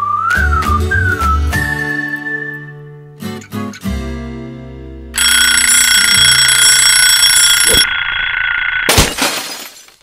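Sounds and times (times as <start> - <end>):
alarm clock bells ringing: 5.2 - 8.9.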